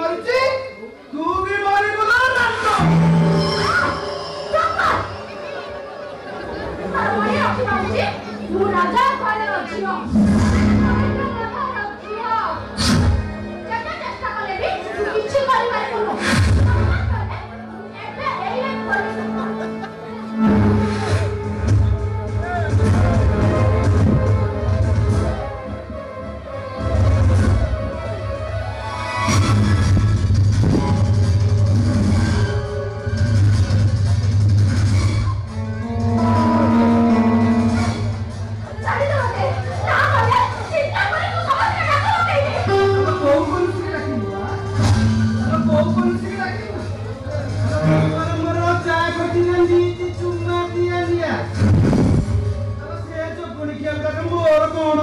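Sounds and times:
stage voices and music over loudspeakers: 0.0 - 55.0
sudden loud hit: 51.6 - 52.4.

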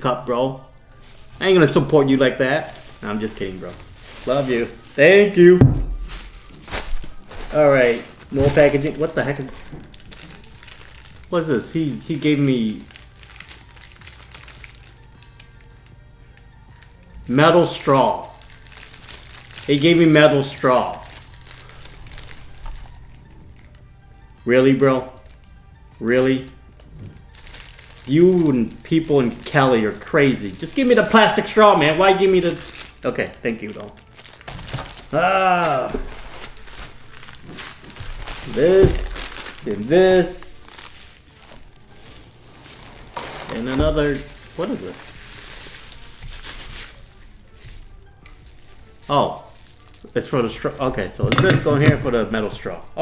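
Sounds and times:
faint background music: 0.0 - 53.0
plastic wrapping crinkling: 0.8 - 53.0.

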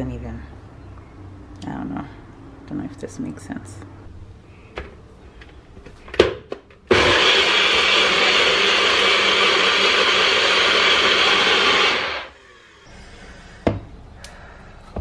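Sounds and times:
blender motor running: 6.9 - 12.4.

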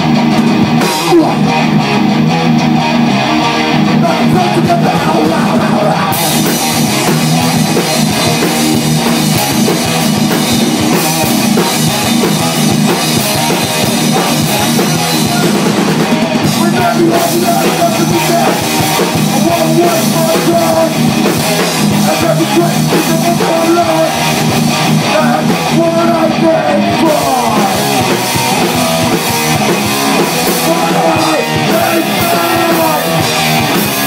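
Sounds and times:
bass guitar: 0.0 - 34.0
distorted electric guitars: 0.0 - 34.0
drum kit and crashing cymbals: 6.1 - 25.8, 27.0 - 34.0.

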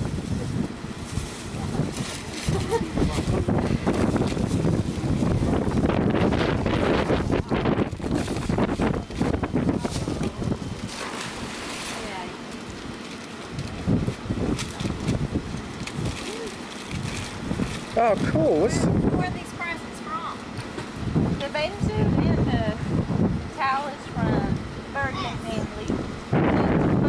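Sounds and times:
wrapping paper rustling and tearing: 0.0 - 5.8, 7.9 - 18.3
wind buffeting microphone: 0.0 - 19.8, 20.4 - 27.0
faint voices: 0.2 - 5.8, 11.8 - 20.6.

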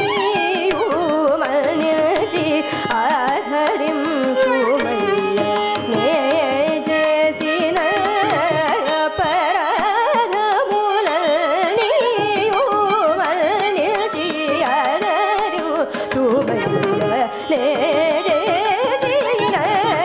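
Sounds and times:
tanpura drone: 0.0 - 20.0
violin: 0.0 - 20.0
woman singing: 0.0 - 20.0.

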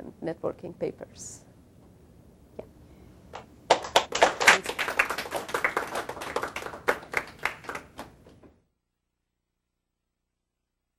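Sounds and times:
small audience applauding: 3.3 - 8.4.

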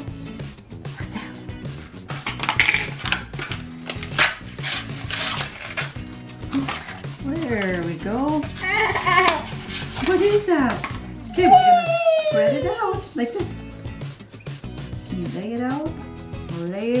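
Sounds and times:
background music: 0.0 - 17.0
paper wrapper rustling: 2.5 - 7.8, 8.4 - 11.0.

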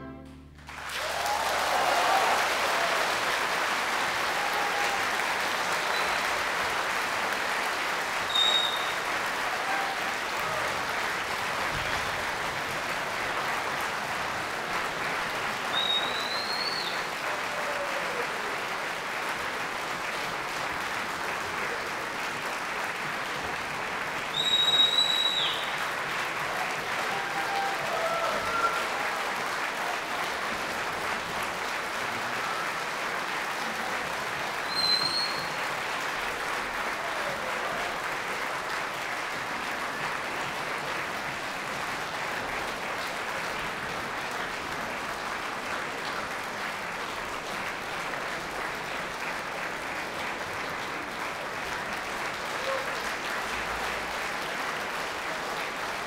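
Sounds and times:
audience applauding: 0.0 - 56.0
high whistle from crowd: 5.7 - 6.4, 8.2 - 9.1, 15.7 - 17.1, 24.3 - 25.8, 34.6 - 35.6.

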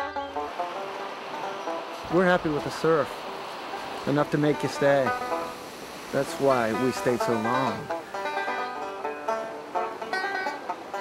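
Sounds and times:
banjo picking: 0.0 - 11.0
surf rushing hiss: 0.0 - 11.0.

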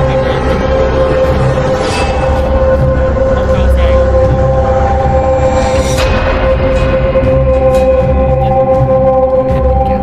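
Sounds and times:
deep low rumble: 0.0 - 10.0
droning chord: 0.0 - 10.0.

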